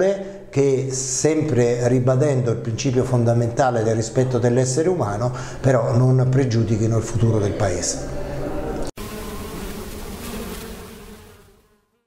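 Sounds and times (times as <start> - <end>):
bee-like buzzing: 8.9 - 12.0.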